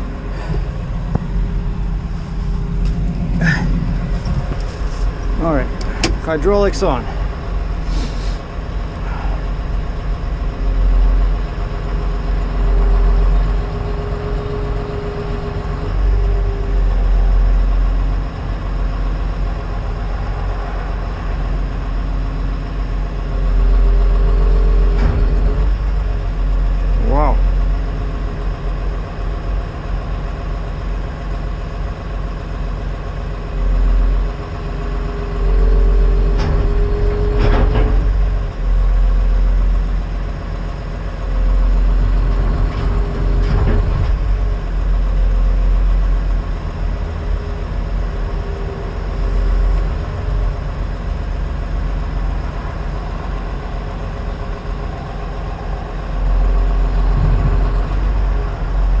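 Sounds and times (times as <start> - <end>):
excavator diesel engine running: 0.0 - 59.0
hydraulic whine: 32.8 - 40.4.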